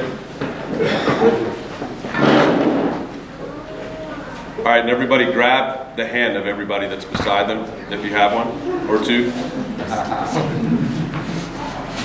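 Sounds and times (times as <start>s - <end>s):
chairs shifting and scraping: 0.4s - 3.2s
people shuffling: 7.2s - 12.0s.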